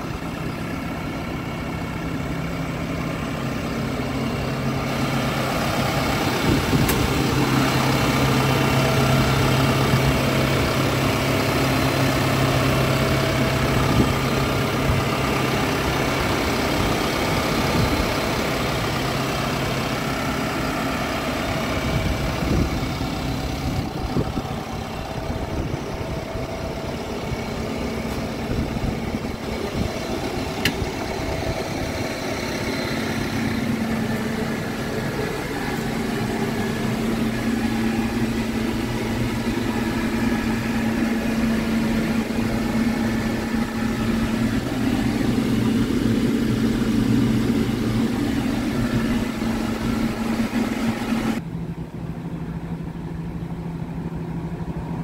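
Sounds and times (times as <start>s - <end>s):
diesel engine idling: 0.0s - 55.0s.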